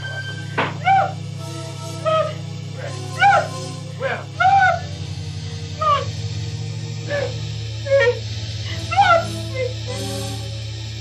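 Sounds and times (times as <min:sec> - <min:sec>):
low synth bass tone: 0:00.0 - 0:11.0
wailing woodwind-like melody: 0:00.0 - 0:11.0.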